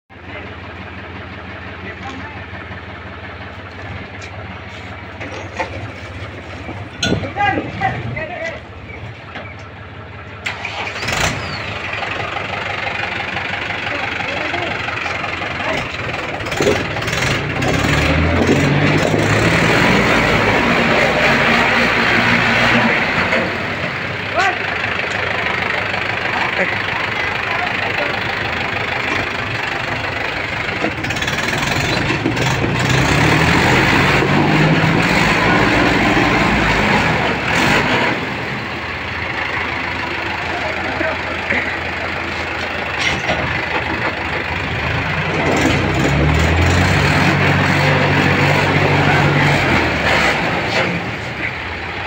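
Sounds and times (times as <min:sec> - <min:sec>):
diesel tractor engines running: 0:00.1 - 0:52.0.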